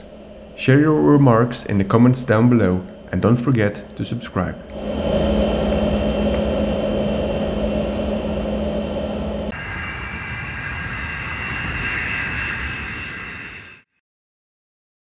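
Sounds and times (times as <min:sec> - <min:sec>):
high turbofan whine: 0:00.0 - 0:13.8
jet engine drone: 0:00.0 - 0:13.9.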